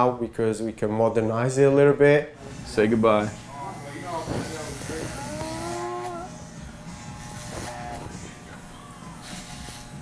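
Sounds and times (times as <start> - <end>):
electric hair clippers buzzing: 2.4 - 10.0
man's vocal sounds: 4.3 - 6.3
man groaning: 5.0 - 6.3.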